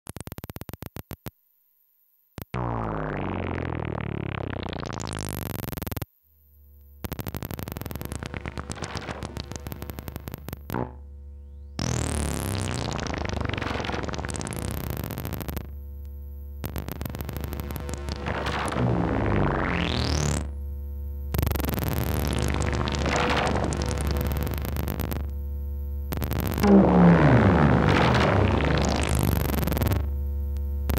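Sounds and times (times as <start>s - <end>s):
sequenced synthesizer notes: 2.6s - 5.6s, 7.2s - 15.8s, 16.6s - 20.6s, 21.4s - 25.3s, 26.2s - 30.1s
low synthesizer drone: 7.6s - 30.8s.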